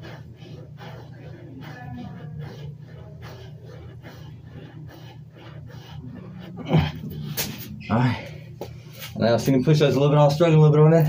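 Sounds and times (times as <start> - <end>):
man panting hard: 4.0 - 9.2.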